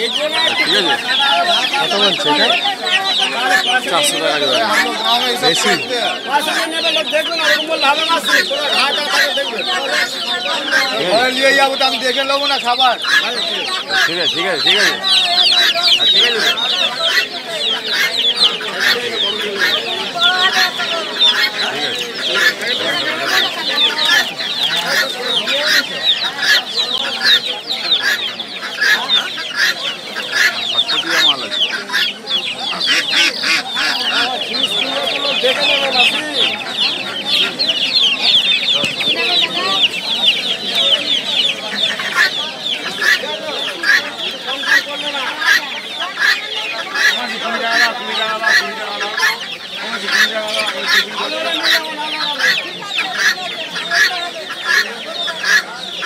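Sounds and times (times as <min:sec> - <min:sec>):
chicks peeping: 0:00.0 - 0:56.0.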